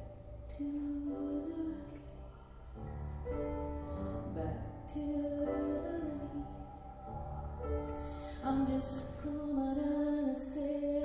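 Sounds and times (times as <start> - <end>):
piano accompaniment: 0.0 - 11.0.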